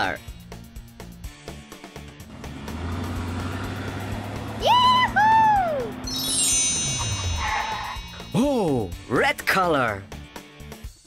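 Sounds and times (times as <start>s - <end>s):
descending sparkly chime run: 6.0s - 8.9s.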